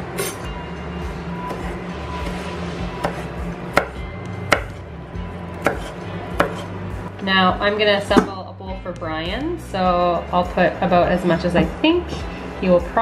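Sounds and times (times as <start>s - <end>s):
knife slicing leaves on wooden board: 5.6s - 6.7s.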